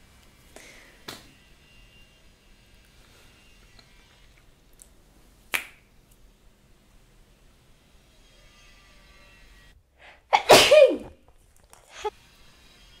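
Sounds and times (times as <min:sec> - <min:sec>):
person sneezing: 0:10.3 - 0:11.2.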